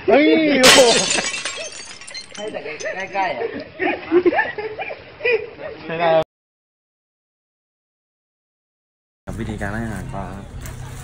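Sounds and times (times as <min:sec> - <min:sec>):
glass breaking: 0:00.6 - 0:03.2.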